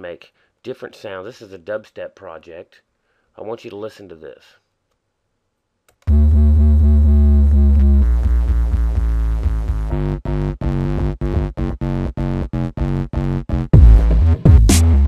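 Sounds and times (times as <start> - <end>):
dubstep synthesizer bass: 6.1 - 15.0.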